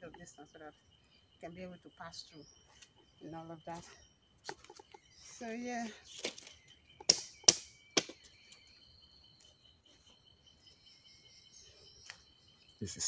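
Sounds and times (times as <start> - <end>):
high-pitched insect drone: 0.0 - 13.0.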